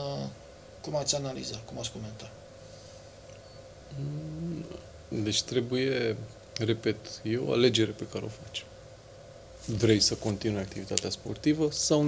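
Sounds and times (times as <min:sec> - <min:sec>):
man's hesitation sound: 0:03.9 - 0:04.8.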